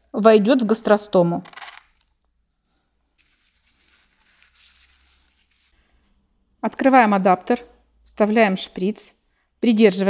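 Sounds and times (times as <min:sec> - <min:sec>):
paper napkin rustling: 0:03.2 - 0:05.7.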